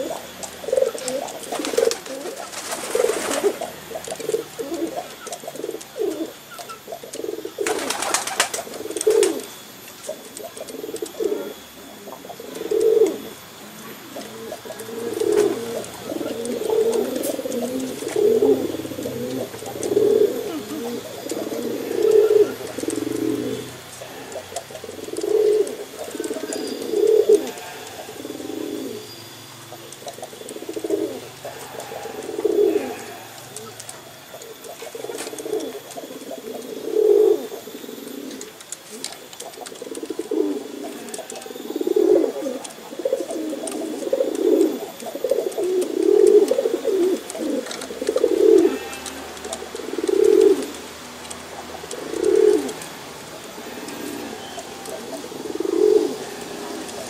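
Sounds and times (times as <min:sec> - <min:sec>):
pigeon cooing: 0:00.0 - 0:57.0.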